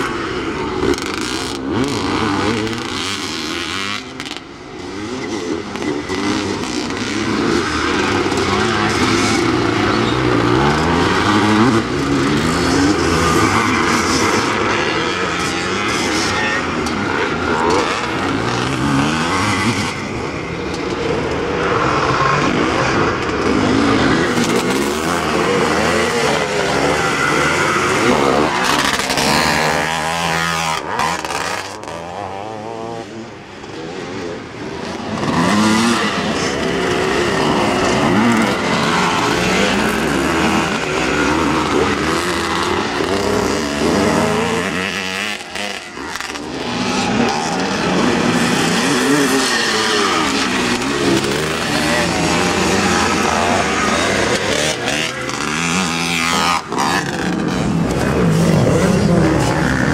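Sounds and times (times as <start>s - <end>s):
motocross motorcycles revving: 0.0s - 59.9s.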